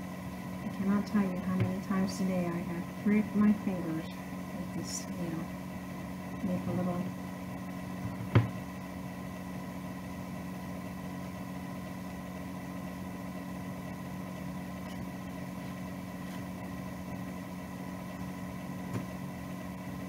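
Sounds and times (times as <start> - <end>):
steady machine hum: 0.0 - 20.0.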